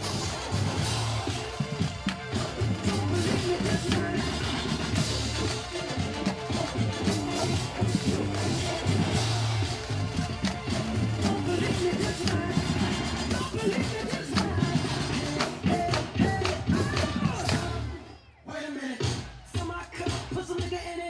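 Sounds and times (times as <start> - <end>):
snare and bass drums: 0.0 - 17.8
amplified pop music with vocals: 0.0 - 21.0.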